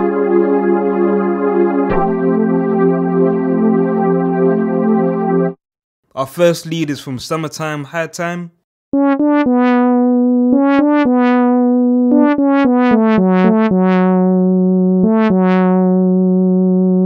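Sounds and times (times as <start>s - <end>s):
sawtooth synth lead melody: 0.0s - 5.6s, 9.0s - 17.0s.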